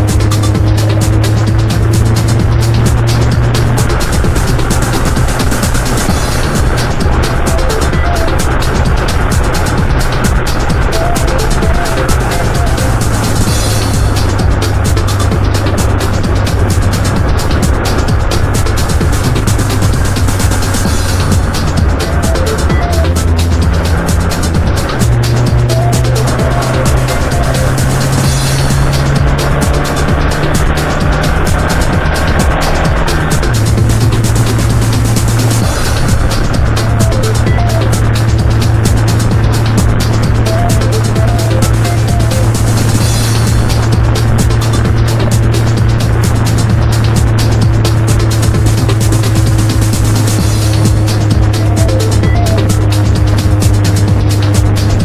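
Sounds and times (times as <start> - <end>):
fast beat music with bass: 0.0 - 55.0.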